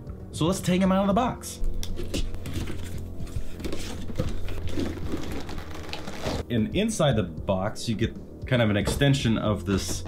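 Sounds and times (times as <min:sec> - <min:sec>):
background music: 0:00.0 - 0:10.0
cardboard and plastic handling: 0:01.9 - 0:06.4.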